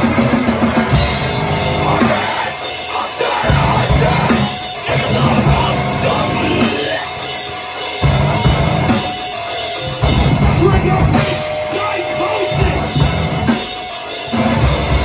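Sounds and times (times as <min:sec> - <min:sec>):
heavy band playing live: 0:00.0 - 0:15.0.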